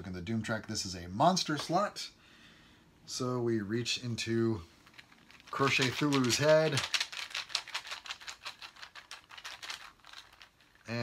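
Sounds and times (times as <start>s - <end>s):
cardboard tokens clicking in a bag: 4.8s - 11.0s.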